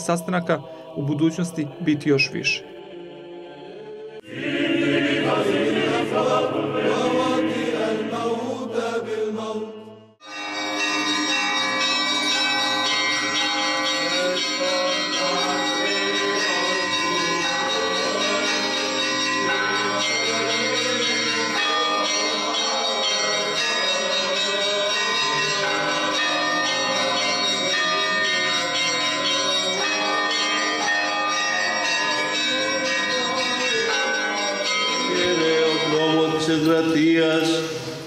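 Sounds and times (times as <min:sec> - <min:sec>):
church bells ringing: 0:00.0 - 0:02.7, 0:10.2 - 0:37.9.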